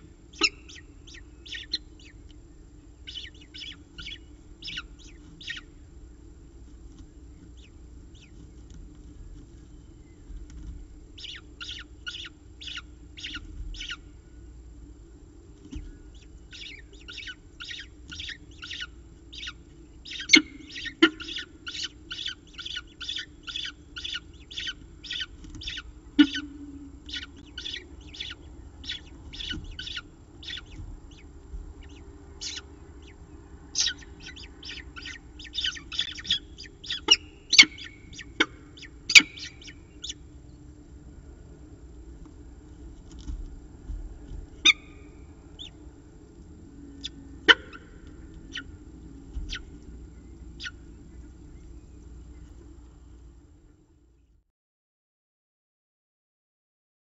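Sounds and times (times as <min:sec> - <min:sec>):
low steady hum: 0:00.0 - 0:54.5
falcon chick begging calls: 0:00.3 - 0:02.2, 0:03.1 - 0:05.7, 0:11.2 - 0:14.0, 0:16.1 - 0:40.2, 0:44.6 - 0:45.8, 0:47.0 - 0:48.7, 0:50.6 - 0:50.8.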